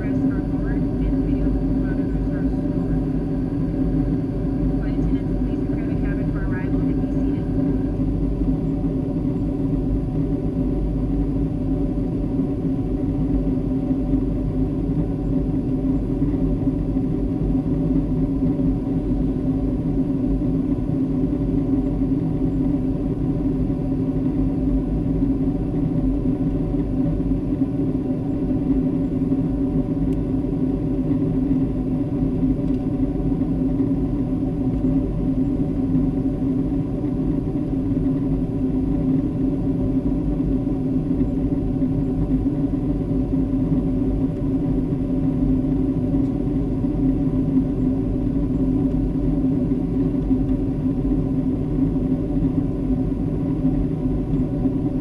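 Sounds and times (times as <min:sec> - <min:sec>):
airplane cabin engine rumble: 0:00.0 - 0:55.0.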